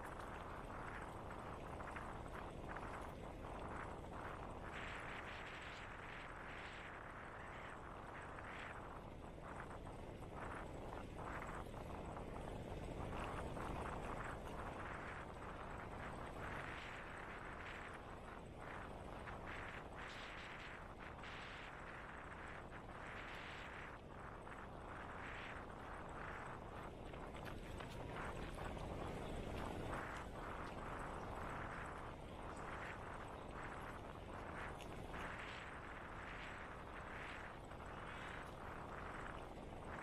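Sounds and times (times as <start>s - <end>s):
wind rushing on microphone: 0.0s - 40.0s.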